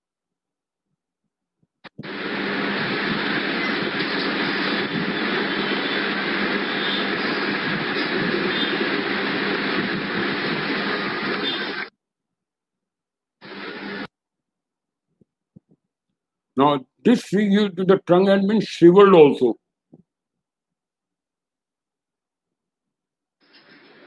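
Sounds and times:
steady rushing noise: 0:01.9 - 0:11.9, 0:13.4 - 0:14.1.

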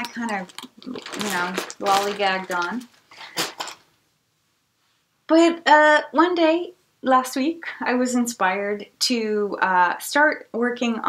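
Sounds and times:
handling knock and rustle: 0:00.0 - 0:03.9.

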